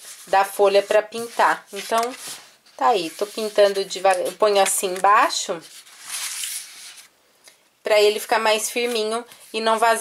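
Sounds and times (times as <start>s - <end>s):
paper rustling and sliding: 0.0s - 7.1s.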